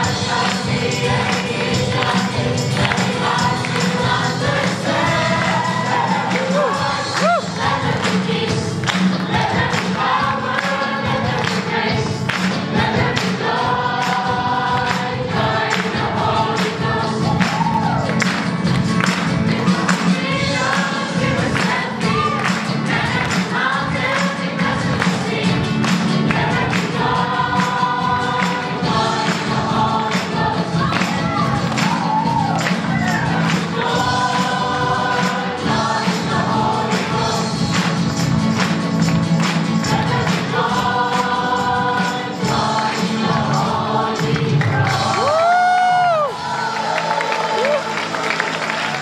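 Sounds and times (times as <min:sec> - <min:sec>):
steady percussion beat: 0:00.0 - 0:45.2
church choir singing: 0:00.0 - 0:49.0
musical accompaniment: 0:00.0 - 0:49.0.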